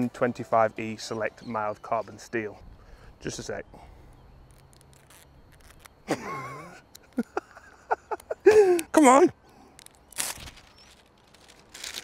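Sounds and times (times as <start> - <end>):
man chuckling and laughing: 6.0 - 9.0.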